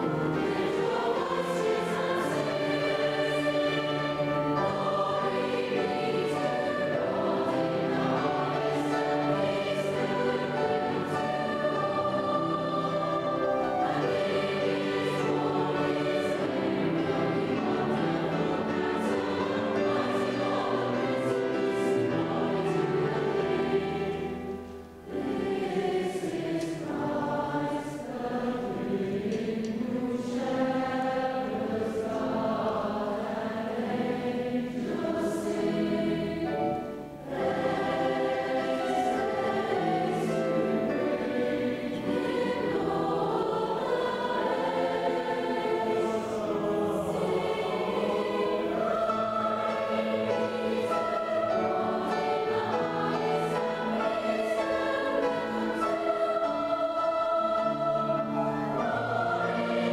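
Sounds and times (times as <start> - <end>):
children's choir singing: 0.0 - 59.9.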